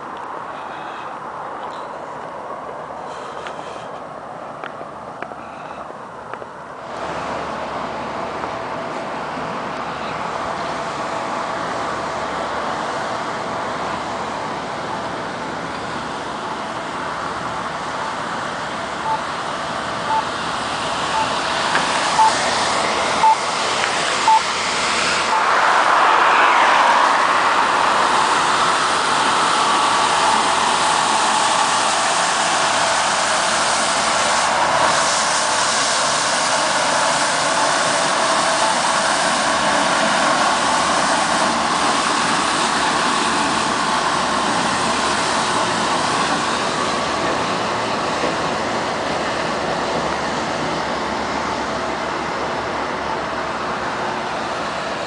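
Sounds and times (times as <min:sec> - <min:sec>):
street traffic: 0:00.0 - 0:55.0
truck engine roaring: 0:00.0 - 0:55.0
short high electronic beeps: 0:19.0 - 0:19.2, 0:20.1 - 0:20.3, 0:21.1 - 0:21.4, 0:22.1 - 0:22.4, 0:23.2 - 0:23.4, 0:24.2 - 0:24.5.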